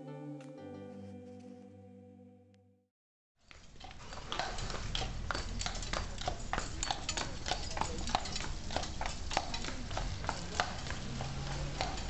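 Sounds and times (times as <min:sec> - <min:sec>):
horse hooves clip-clopping on road: 0:03.4 - 0:12.0.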